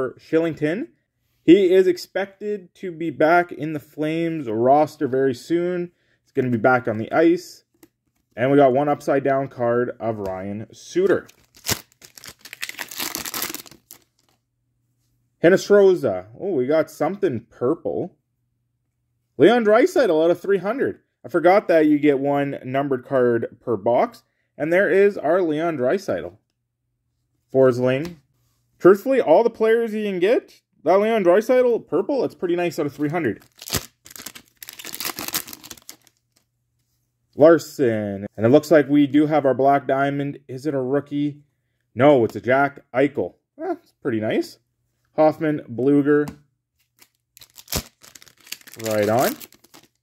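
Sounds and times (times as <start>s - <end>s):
wrapper crinkling and tearing: 11.2s - 14.4s, 33.2s - 36.4s, 47.0s - 50.0s.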